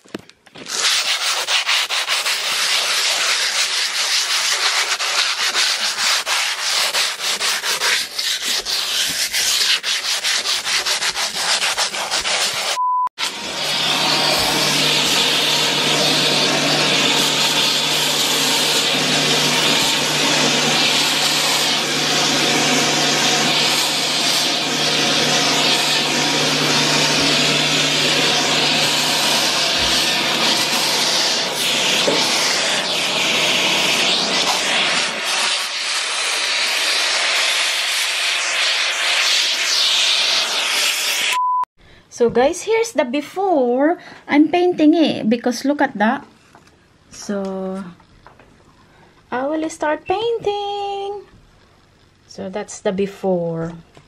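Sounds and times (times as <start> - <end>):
sandpaper rubbing: 0.6 - 12.8, 13.5 - 41.4
vacuum cleaner running: 11.4 - 41.4.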